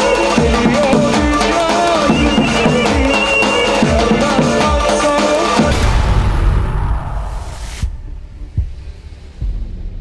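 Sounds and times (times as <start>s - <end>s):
music: 0.0s - 10.0s
deep thuds: 5.7s - 10.0s
low rumble: 5.7s - 10.0s.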